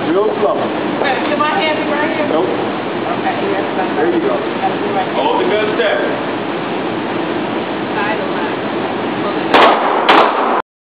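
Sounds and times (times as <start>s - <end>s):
pistol shots with echo: 9.5s - 10.6s.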